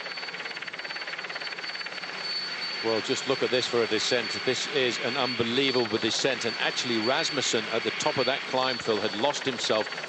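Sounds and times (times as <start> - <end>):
helicopter rotor beating: 0.0 - 10.0.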